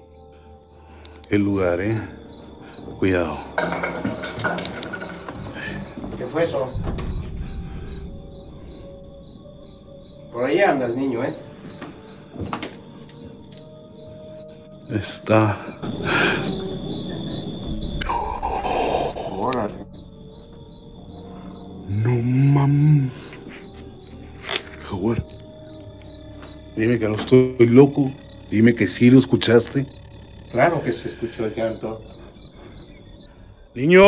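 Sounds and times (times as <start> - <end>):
crickets chirping: 0.0 - 34.0.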